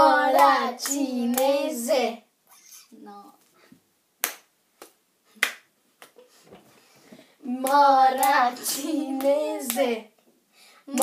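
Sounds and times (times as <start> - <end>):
hand slaps: 4.2 - 6.3.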